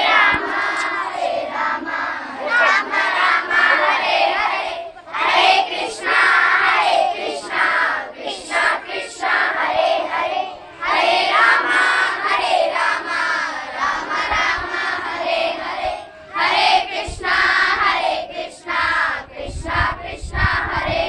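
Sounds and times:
girls singing chant in unison: 0:00.0 - 0:21.0.

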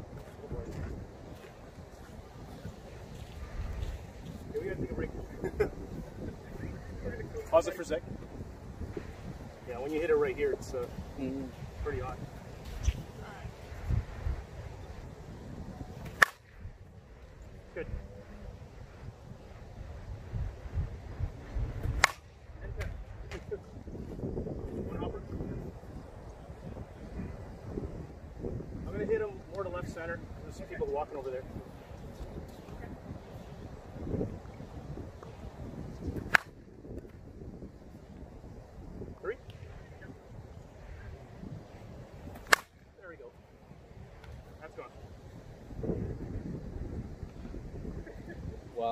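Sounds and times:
softball bat hitting ball: 0:16.0 - 0:16.5, 0:21.8 - 0:23.4, 0:36.2 - 0:36.6, 0:42.3 - 0:42.8.

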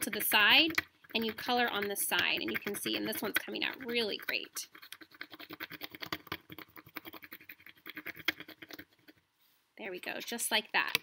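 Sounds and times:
colored pencil scratching on paper: 0:00.0 - 0:09.2.

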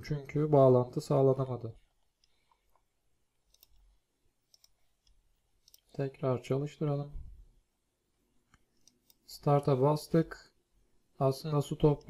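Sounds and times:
faint computer mouse clicks: 0:03.5 - 0:03.9, 0:04.5 - 0:06.0.

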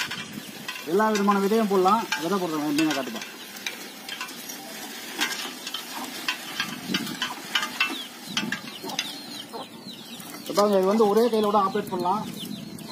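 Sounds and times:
seeder chain clicking and rattling: 0:00.0 - 0:09.4.

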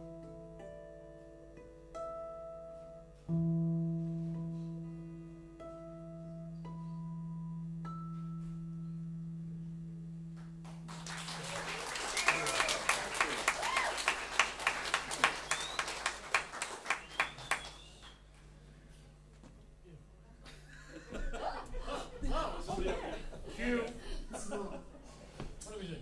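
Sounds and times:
audience applause: 0:10.7 - 0:18.2.

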